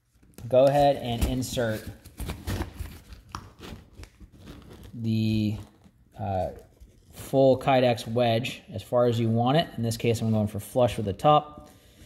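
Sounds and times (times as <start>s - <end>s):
rustling and scraping in pouch: 1.1s - 7.3s.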